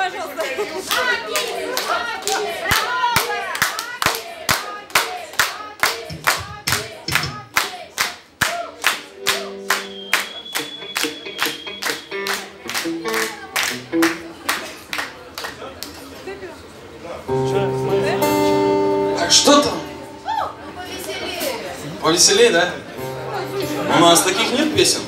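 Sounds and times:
voices: 0.0 - 25.0
audience clapping in time: 0.4 - 16.0
held guitar notes: 9.1 - 14.5, 17.3 - 21.1, 22.8 - 25.0.

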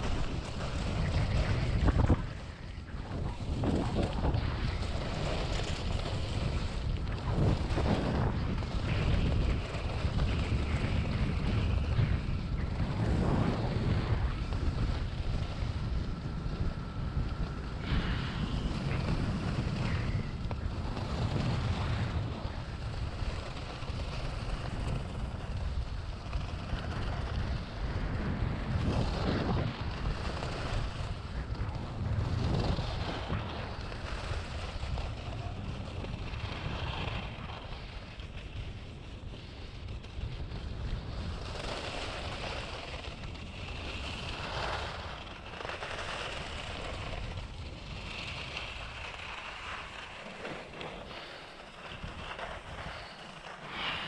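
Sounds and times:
skis scraping on packed snow: 0.0 - 54.0
wind buffeting microphone: 0.0 - 54.0.

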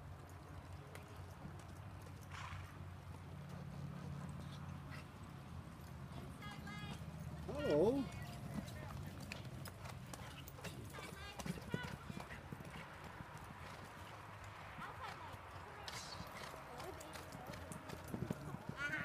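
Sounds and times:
horse hoofbeats on dirt: 0.0 - 19.0.

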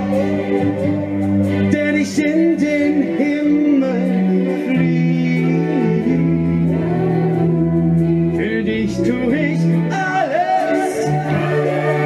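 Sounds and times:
live band music through pa: 0.0 - 12.0
voices singing long notes: 0.0 - 12.0.

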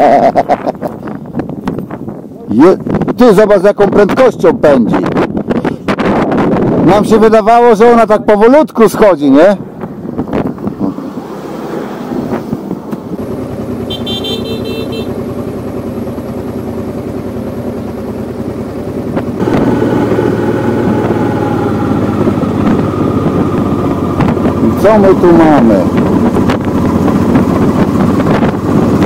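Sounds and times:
wind rush: 4.6 - 7.4, 9.3 - 13.3, 19.1 - 29.0
motorcycle engine riding: 9.6 - 29.0
motorcycle engine idling: 13.2 - 29.0.

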